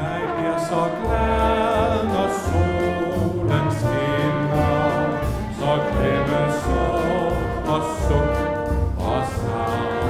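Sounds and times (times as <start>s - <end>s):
orchestra playing light melody: 0.0s - 10.0s
trombones: 0.0s - 10.0s.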